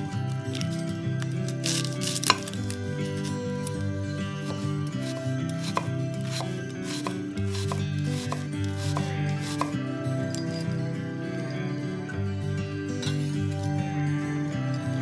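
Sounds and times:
soft background music: 0.0 - 15.0
knife chopping on wooden board: 2.2 - 2.6, 5.1 - 9.7.

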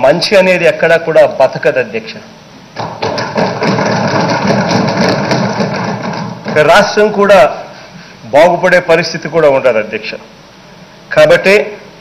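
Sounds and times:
people thumping wooden desks: 2.8 - 7.0.

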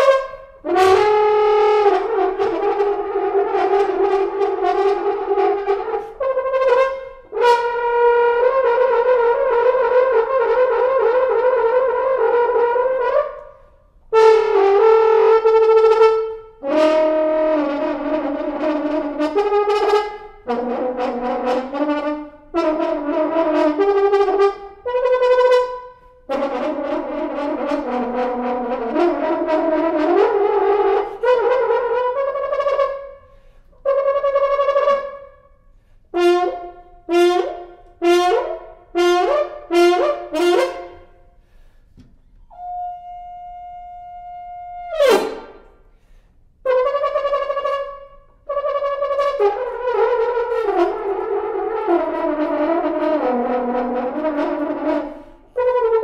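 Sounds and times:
solo french horn playing: 0.0 - 35.4, 36.1 - 41.8, 42.4 - 56.0.

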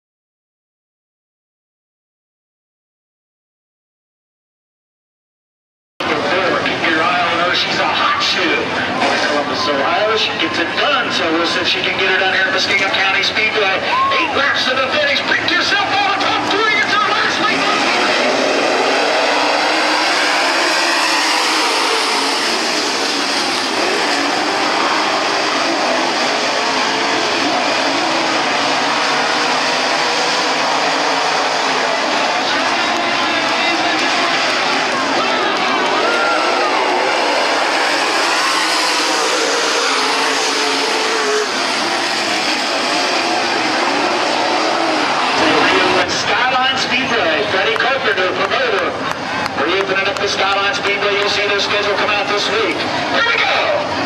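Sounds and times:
race car engines passing: 6.0 - 54.0.

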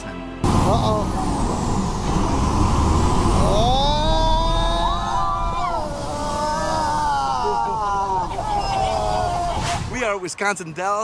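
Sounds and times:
vehicle engine running low: 0.4 - 8.6
passengers shouting whoa together: 3.4 - 10.0.

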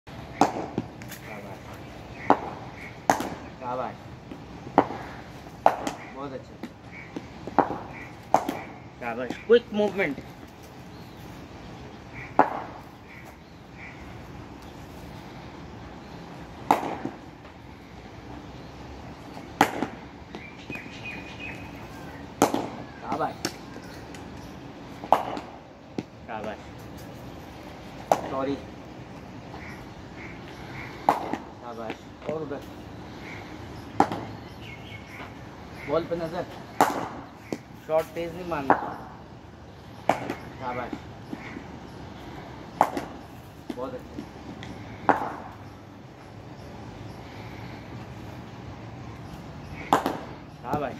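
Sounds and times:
cricket ball hitting bat: 0.3 - 0.9, 2.3 - 3.4, 4.7 - 6.0, 6.6 - 8.7, 12.3 - 12.8, 16.6 - 17.2, 19.5 - 20.8, 22.4 - 22.8, 25.1 - 26.1, 28.1 - 28.4, 31.0 - 31.5, 34.0 - 34.3, 36.8 - 37.7, 42.8 - 44.3, 45.0 - 45.5, 49.9 - 50.9
ball hitting concrete floor: 49.9 - 50.9.

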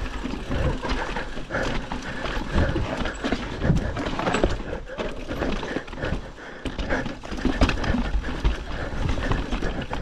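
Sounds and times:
bike rattling: 0.0 - 10.0.

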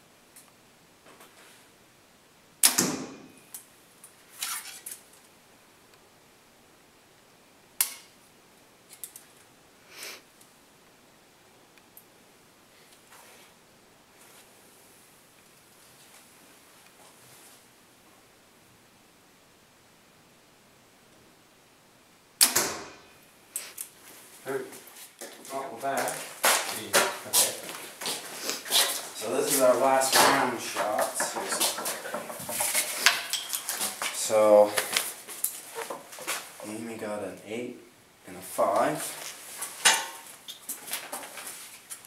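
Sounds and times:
clicks and rustles of handling: 25.0 - 36.8.

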